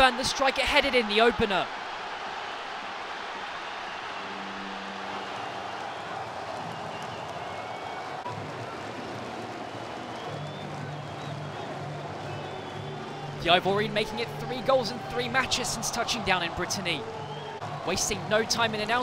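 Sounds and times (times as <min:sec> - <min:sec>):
stadium crowd roaring: 0:00.0 - 0:19.0.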